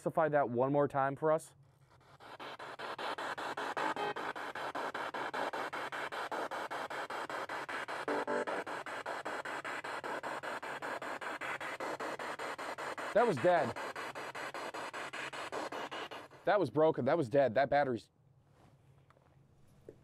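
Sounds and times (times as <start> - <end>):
radio static chopped into cuts: 2.3 - 16.7
snatches of tone or voice: 2.4 - 16.4.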